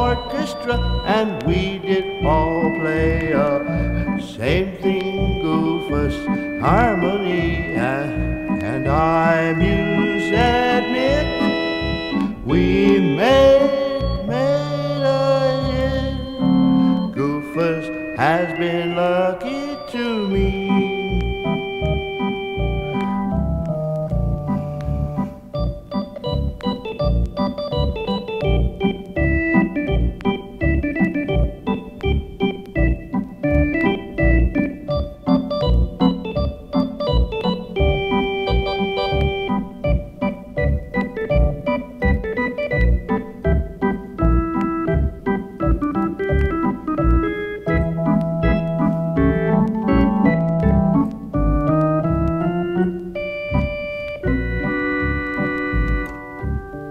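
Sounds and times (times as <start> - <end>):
lounge organ music: 0.0 - 56.9.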